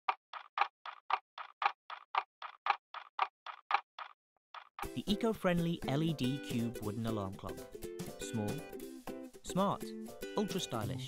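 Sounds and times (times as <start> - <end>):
clock ticking: 0.0 - 4.9.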